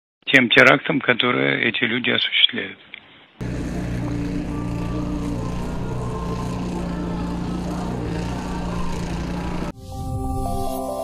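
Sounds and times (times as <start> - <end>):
engines humming: 3.4 - 9.7.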